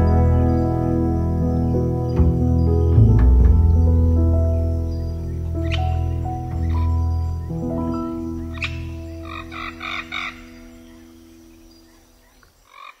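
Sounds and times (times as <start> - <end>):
slow piano piece: 0.0 - 12.6
frog croaks: 8.5 - 13.0.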